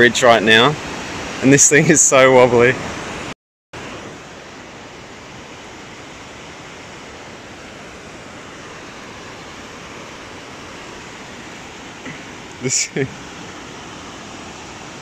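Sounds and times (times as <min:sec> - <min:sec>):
water rushing over rocks: 0:00.0 - 0:15.0.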